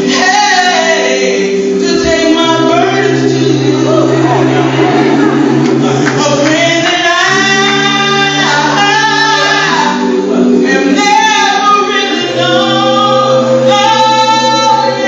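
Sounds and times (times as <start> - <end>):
sustained backing chords: 0.0 - 15.0
woman singing gospel song: 0.0 - 15.0.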